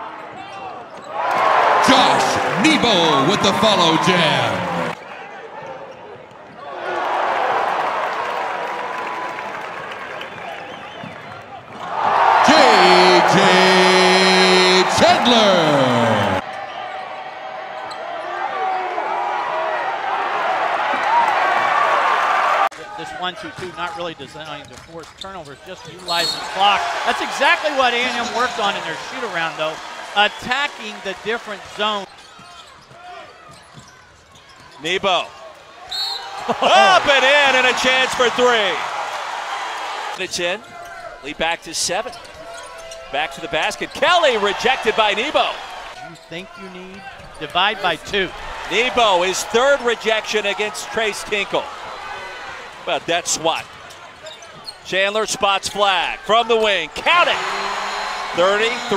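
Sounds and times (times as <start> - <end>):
crowd noise: 0.0 - 10.5, 11.1 - 23.4, 25.9 - 32.1, 35.9 - 40.7, 42.3 - 58.9
commentator speaking: 1.8 - 5.0, 12.4 - 16.4, 26.1 - 32.0
faint crowd noise: 11.1 - 17.0.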